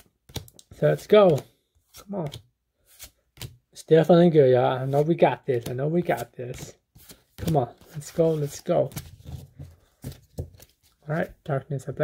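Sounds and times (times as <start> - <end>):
cards sliding rustle: 0.0 - 3.6, 4.8 - 11.0.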